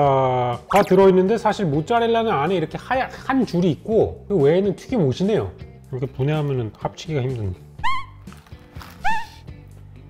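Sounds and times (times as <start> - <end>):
background music: 0.0 - 10.0
swooping whistle sound effects: 7.8 - 8.3, 8.9 - 9.4.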